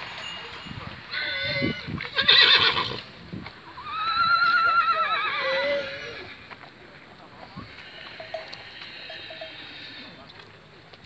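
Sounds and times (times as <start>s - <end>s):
horse whinnying: 1.1s - 3.1s, 3.7s - 6.4s.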